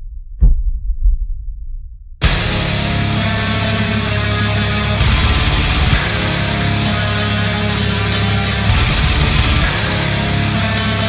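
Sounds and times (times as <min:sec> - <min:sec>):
deep heavy thumps: 0:00.0 - 0:02.6.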